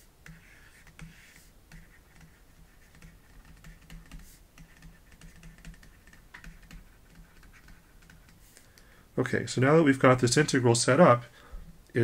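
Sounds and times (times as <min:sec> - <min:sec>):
stylus tapping on pen tablet: 0:00.2 - 0:08.8.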